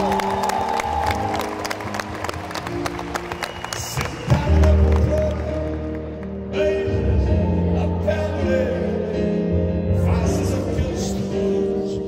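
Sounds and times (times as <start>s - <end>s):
hands clapping along: 0.0s - 6.4s
live band keyboard and bass: 0.0s - 12.0s.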